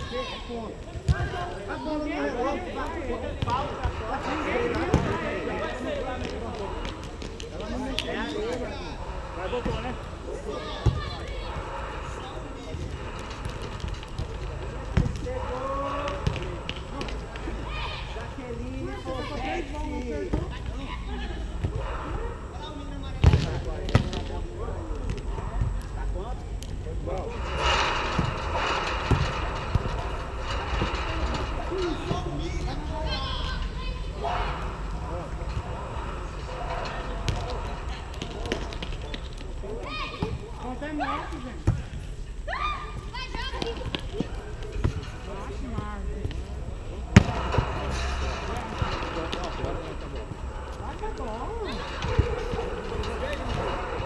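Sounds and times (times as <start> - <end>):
people calling out and talking: 0.0 - 54.0.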